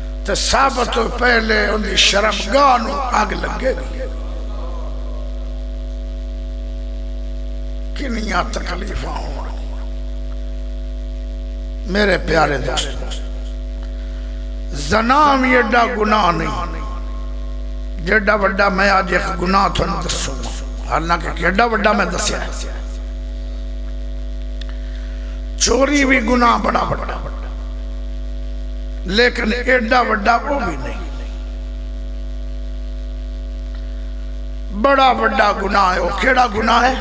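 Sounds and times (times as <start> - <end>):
electrical mains hum: 0.0 - 37.0
man speaking: 0.3 - 5.5, 8.0 - 9.9, 11.9 - 13.5, 14.7 - 17.2, 18.0 - 23.1, 25.6 - 27.6, 29.0 - 31.5, 34.7 - 37.0.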